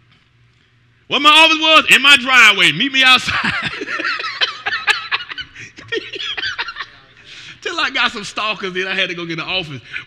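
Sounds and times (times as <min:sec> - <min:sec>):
man laughing: 0:03.2 - 0:07.1.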